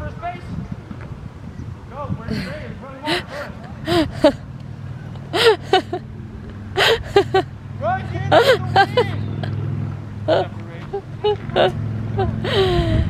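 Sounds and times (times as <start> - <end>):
children shouting and squealing: 6.8 - 9.6.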